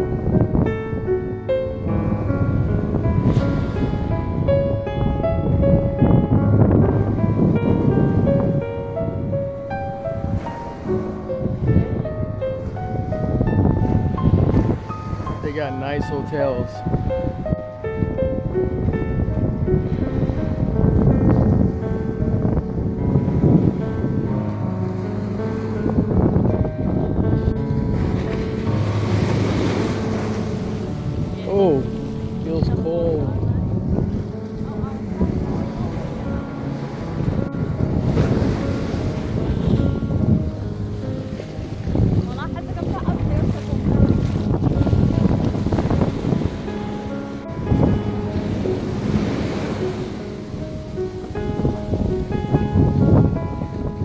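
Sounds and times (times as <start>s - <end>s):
background music: 0.0s - 54.0s
ocean surf washing up beach: 0.0s - 54.0s
wind on microphone: 0.0s - 54.0s.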